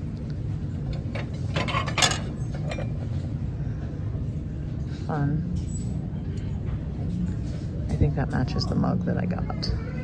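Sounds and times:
low background hum: 0.0 - 10.0
ceramic plates clinking: 1.0 - 3.1.

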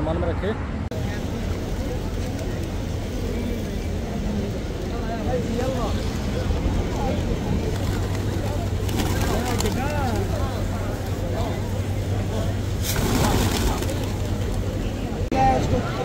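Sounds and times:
faint voices: 0.0 - 16.0.

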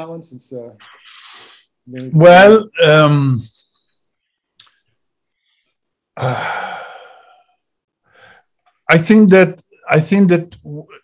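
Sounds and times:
man speaking: 0.0 - 3.6, 8.9 - 11.0
faint breath: 5.3 - 8.6.

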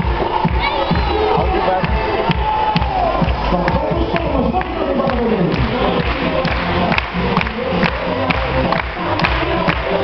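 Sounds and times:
crowd cheering: 0.0 - 10.0
music with steady beat: 0.0 - 10.0
children shouting: 0.5 - 1.7.

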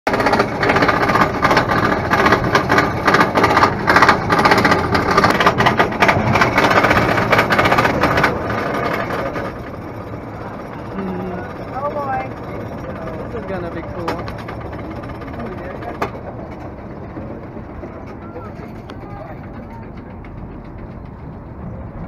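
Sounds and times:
roller coaster car rolling: 0.1 - 22.0
roller coaster chain clattering: 0.1 - 22.0.

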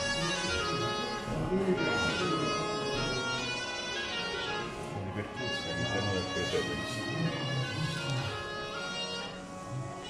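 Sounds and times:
music of long held notes: 0.0 - 10.0.

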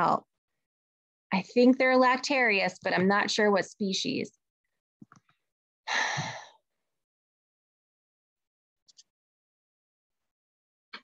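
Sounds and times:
breathy sigh: 5.9 - 6.6.

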